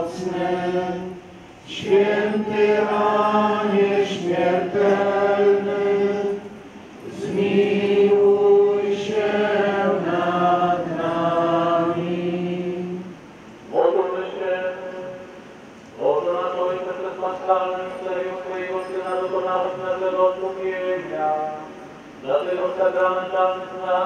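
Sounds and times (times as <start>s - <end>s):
hymn being sung: 0.0s - 24.0s.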